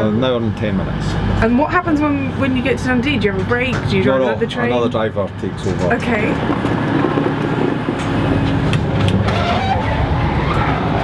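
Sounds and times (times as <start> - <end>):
diesel train idling rumble: 0.0 - 11.0.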